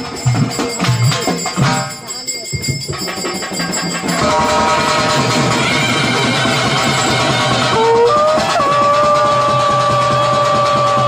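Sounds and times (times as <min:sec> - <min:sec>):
fast drumming: 0:00.0 - 0:11.0
wind instrument long note: 0:04.2 - 0:11.0.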